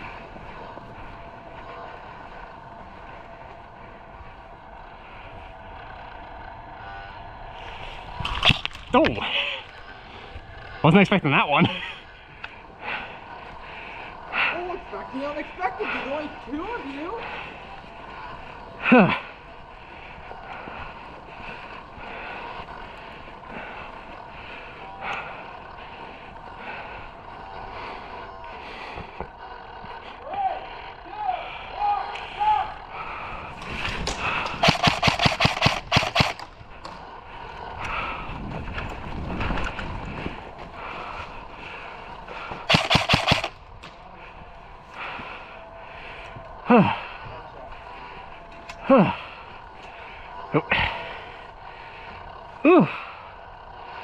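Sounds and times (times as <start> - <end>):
airsoft rifle firing bursts: 34.0 - 36.5, 42.7 - 43.6.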